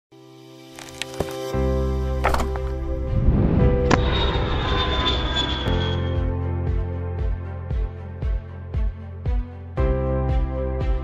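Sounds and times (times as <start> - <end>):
music: 0.1 - 11.0
airplane fly-by: 2.4 - 6.3.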